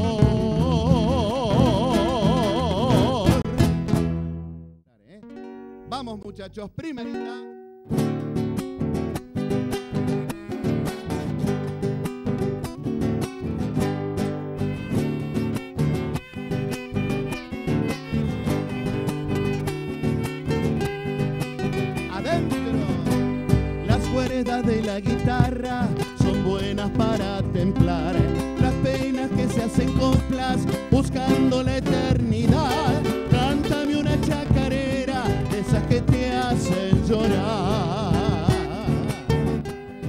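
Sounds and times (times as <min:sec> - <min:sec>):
folk ensemble playing: 0:00.0 - 0:04.6, 0:07.0 - 0:40.0
soft guitar notes: 0:00.0 - 0:40.0
strummed guitars: 0:00.0 - 0:40.0
person speaking a cue: 0:04.9 - 0:07.5
steady drum beats: 0:23.2 - 0:39.0.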